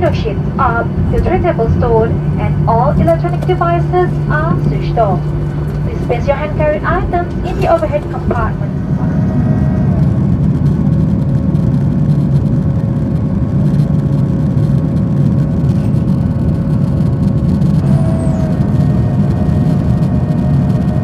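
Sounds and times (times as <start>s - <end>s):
faint engine tones: 0.0s - 21.0s
jet cabin engine rumble: 0.0s - 21.0s.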